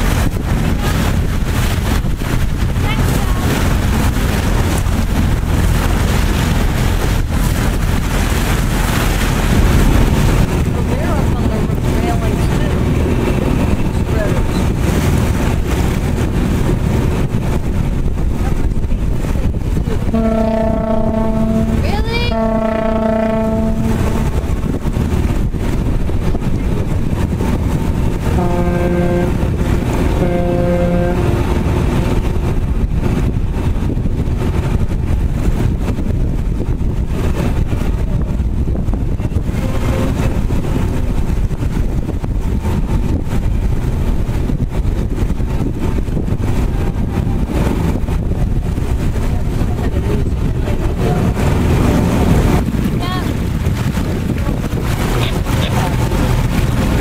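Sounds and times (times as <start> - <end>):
boat engine rumble: 0.0 - 57.0
wind on microphone: 0.0 - 57.0
horn blasts: 20.1 - 24.7, 28.2 - 32.0.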